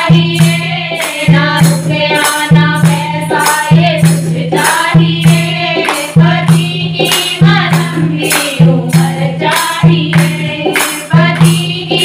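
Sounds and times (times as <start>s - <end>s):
rhythmic hand-clapping: 0.0s - 12.0s
women singing in unison: 0.0s - 12.0s.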